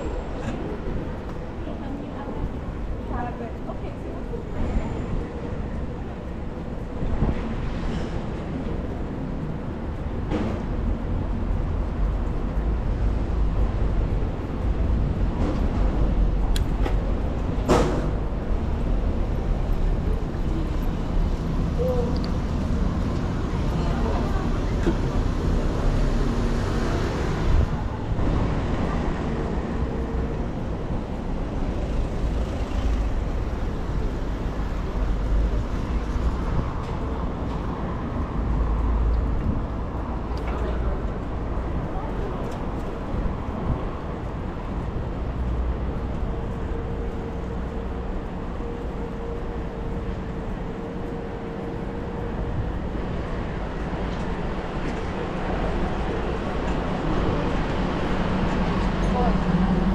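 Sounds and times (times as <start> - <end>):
street traffic noise: 0.0 - 59.9.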